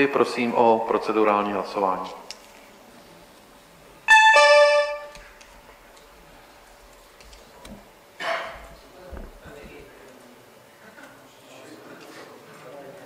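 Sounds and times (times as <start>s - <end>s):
two-note electronic chime: 4.1s - 5.2s.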